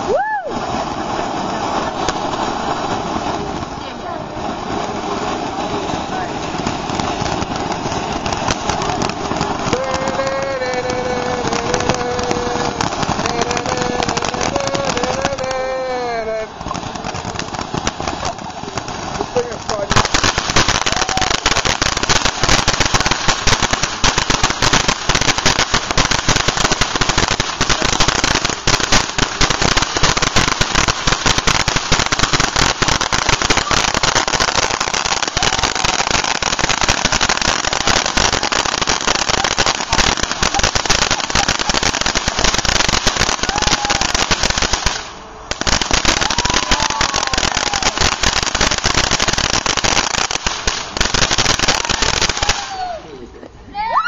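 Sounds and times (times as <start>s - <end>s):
dense loud firework crackling: 0.0s - 53.6s
firework fountain hissing: 0.0s - 54.0s.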